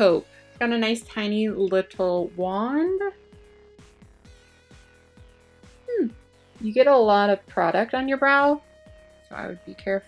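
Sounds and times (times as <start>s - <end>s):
electronic background music: 0.0s - 10.0s.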